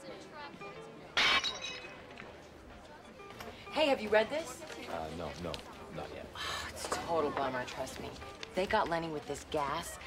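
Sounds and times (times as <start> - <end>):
glass crashing: 1.2 - 2.0
high ringing: 1.2 - 2.1.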